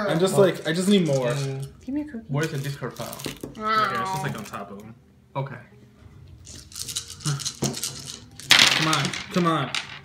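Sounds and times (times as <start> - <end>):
dice clattering on wooden table: 0.4 - 1.7, 6.5 - 10.0
dice rattling in hands: 0.7 - 1.8, 6.5 - 10.0.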